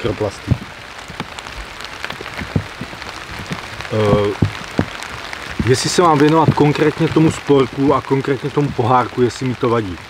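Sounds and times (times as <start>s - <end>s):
faint hiss: 0.0s - 10.0s
raindrops ticking on leaves: 0.0s - 10.0s.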